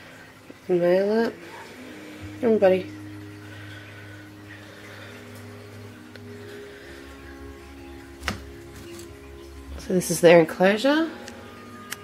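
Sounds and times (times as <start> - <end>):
low steady hum: 0.0 - 12.0
quiet background music: 0.0 - 12.0.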